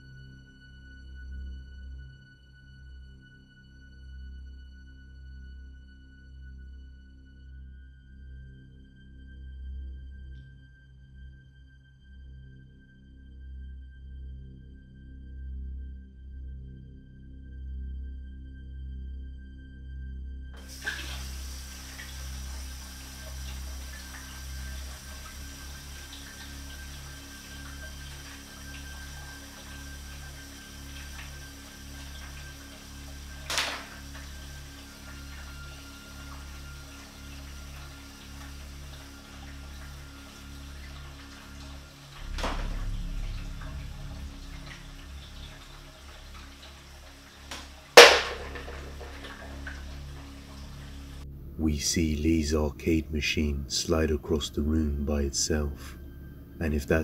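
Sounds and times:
low pulsing background music: 0:00.0 - 0:57.0
loud bang: 0:48.0 - 0:49.5.

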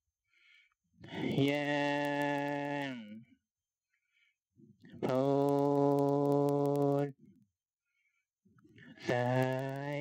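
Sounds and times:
faint clicks: 0:04.8 - 0:07.2.

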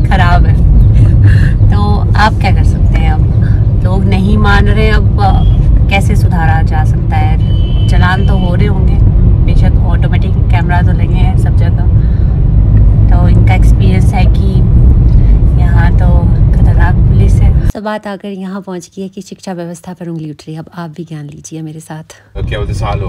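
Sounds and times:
people talking: 0:00.0 - 0:11.9, 0:13.1 - 0:14.7, 0:15.5 - 0:23.0
car engine and tyres rumble: 0:00.0 - 0:17.7.

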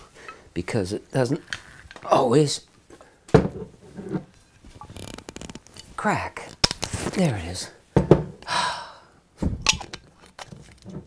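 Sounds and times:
cap creaking and scraping: 0:01.3 - 0:02.1, 0:03.4 - 0:07.3, 0:09.7 - 0:11.0.

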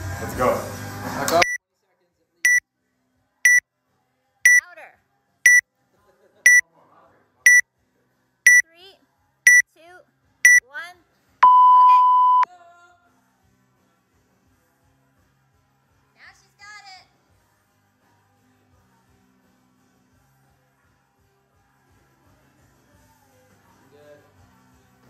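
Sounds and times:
short high timer beeps: 0:11.4 - 0:12.4
long lower timer beep: 0:11.4 - 0:12.5.

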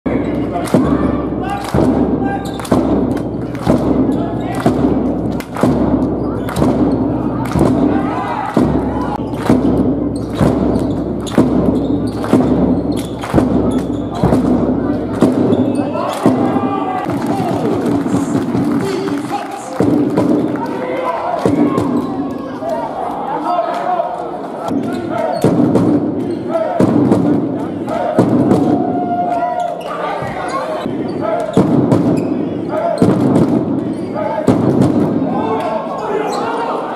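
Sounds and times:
bass drum beats echoing: 0:00.1 - 0:20.7, 0:24.7 - 0:29.2, 0:31.4 - 0:35.4
crowd chanting: 0:26.2 - 0:36.9.

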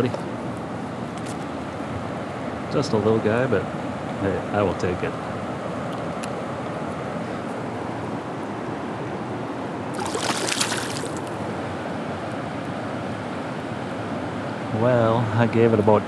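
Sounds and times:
river water rushing: 0:09.8 - 0:11.8
fish splashing into river: 0:09.9 - 0:11.4.

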